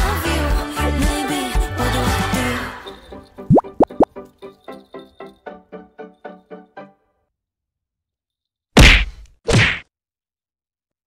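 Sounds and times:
rising cartoon bloops: 0:03.5 - 0:04.1.

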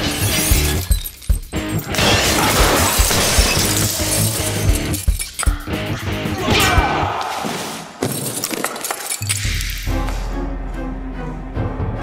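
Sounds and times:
glass bottle shattering: 0:00.0 - 0:05.6, 0:08.0 - 0:09.9.

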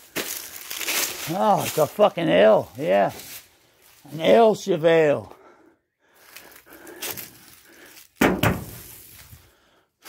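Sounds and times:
rustling: 0:07.2 - 0:09.4
wooden boards knocking underfoot: 0:08.2 - 0:08.9
loud wooden bang: 0:08.2 - 0:09.0.

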